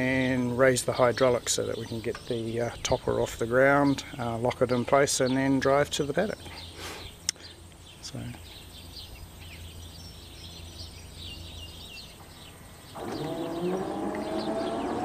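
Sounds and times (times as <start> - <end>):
birds chirping faintly: 0.0 - 15.0
electric motor whine rising: 12.8 - 15.0.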